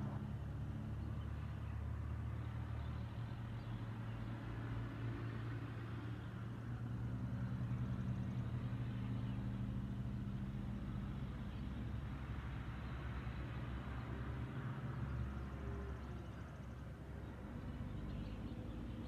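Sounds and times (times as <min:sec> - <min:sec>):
engine humming: 0:00.0 - 0:19.0.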